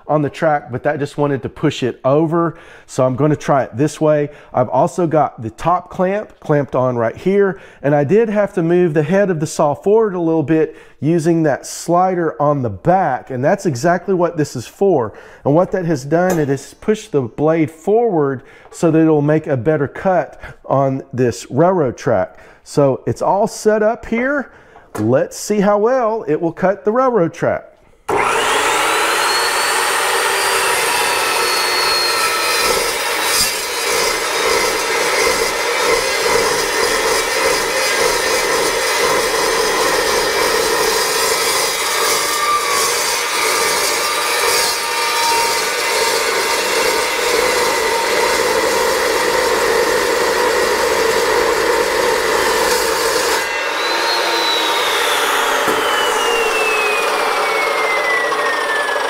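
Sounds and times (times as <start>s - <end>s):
chop saw cutting steel: 16.2s - 17.0s, 28.1s - 59.0s
saw motor whine: 28.1s - 59.0s.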